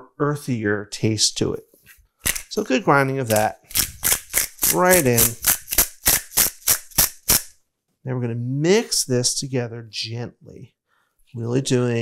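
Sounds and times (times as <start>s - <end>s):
pepper mill grinding: 2.2s - 2.6s, 3.2s - 7.5s.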